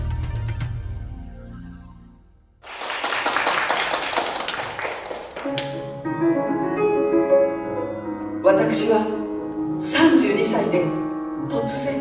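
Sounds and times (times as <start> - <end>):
music: 0.0 - 2.6, 4.8 - 12.0
audience applauding: 2.6 - 5.9
piano notes: 4.8 - 12.0.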